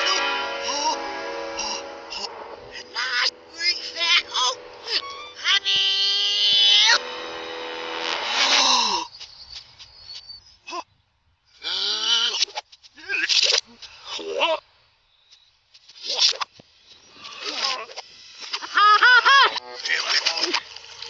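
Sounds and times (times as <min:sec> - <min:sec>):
backwards cartoon voices: 0:00.0 - 0:07.0
music backing: 0:00.0 - 0:09.0
long high-pitched cry: 0:01.6 - 0:07.0.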